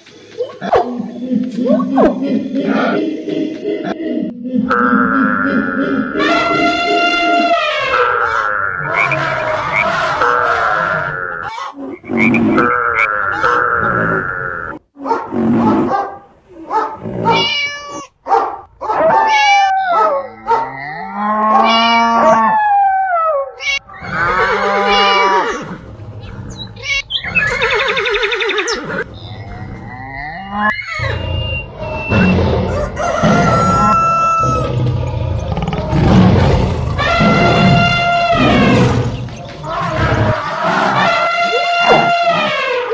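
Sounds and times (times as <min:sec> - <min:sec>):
animal calls: 0:18.9 - 0:42.9.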